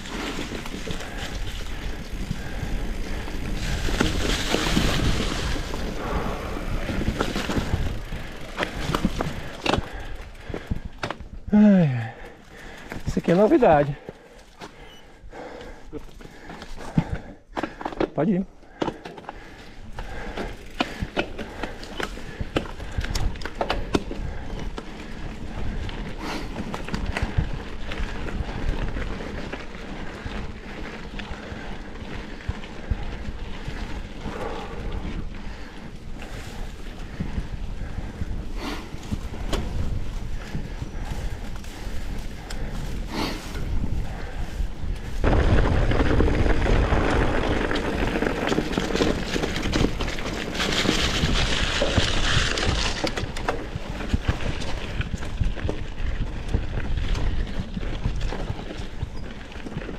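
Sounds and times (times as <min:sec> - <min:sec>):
tyres crunching over dry leaves: 0:00.0 - 0:09.6
bike rattling over bumps: 0:00.0 - 0:59.9
bike tyres rolling on dirt: 0:00.0 - 0:59.9.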